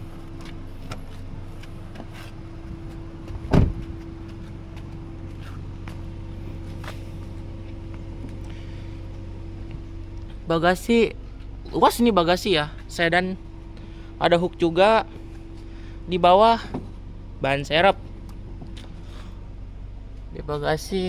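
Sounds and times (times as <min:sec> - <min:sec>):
low hum: 0:00.0 - 0:21.0
car trunk thump: 0:03.3 - 0:04.0.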